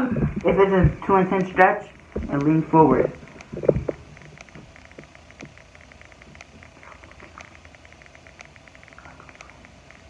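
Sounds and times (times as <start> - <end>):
faint rapid clicking: 0.0 - 10.0.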